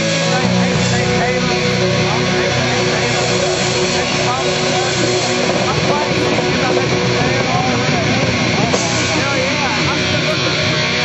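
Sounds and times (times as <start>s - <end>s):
bending electric guitar notes: 0.0s - 11.0s
rock band playing live: 0.0s - 11.0s.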